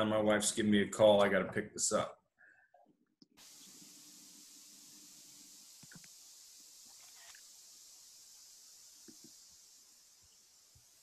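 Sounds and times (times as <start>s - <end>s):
faint steady hiss: 0.0s - 2.2s, 3.4s - 11.0s
faint ticks: 5.8s - 6.2s, 9.0s - 9.4s.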